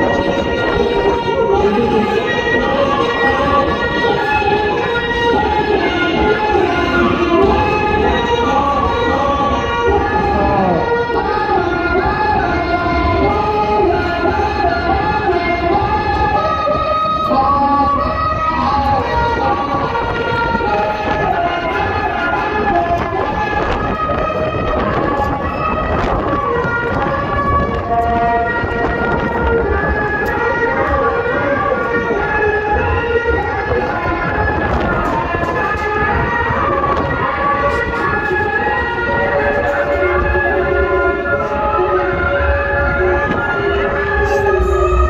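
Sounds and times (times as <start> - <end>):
folk dance music with wind instruments: 0.0 - 45.0
low rumble: 43.7 - 45.0.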